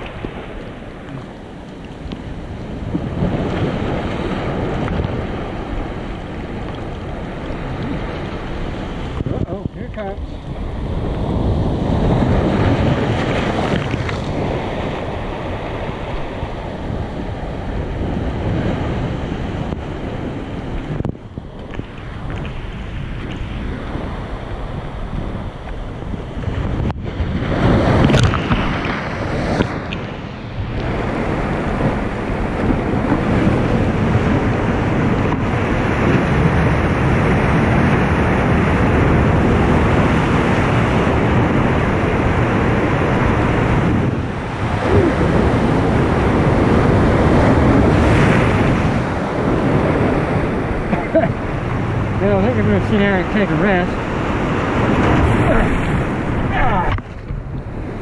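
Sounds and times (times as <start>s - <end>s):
surf against rocks: 0.0s - 58.0s
wind buffeting microphone: 0.0s - 58.0s.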